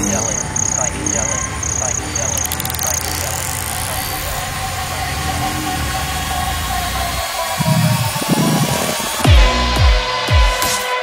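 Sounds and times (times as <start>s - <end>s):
low rough engine-like rumble: 0.0s - 9.7s
held synth tones: 0.0s - 9.8s
rising synth sweep: 0.0s - 9.8s
short bass hits: 8.2s - 10.1s.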